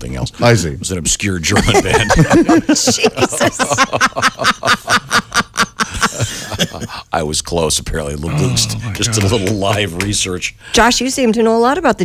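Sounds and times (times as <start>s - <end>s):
people laughing: 1.5s - 7.0s, 8.3s - 10.1s.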